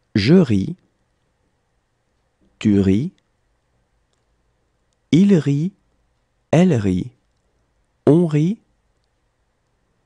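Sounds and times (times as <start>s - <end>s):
person speaking: 0.0s - 1.0s, 2.4s - 3.3s, 5.0s - 7.4s, 8.0s - 8.8s
faint sharp clicks: 4.0s - 5.1s, 8.9s - 9.3s.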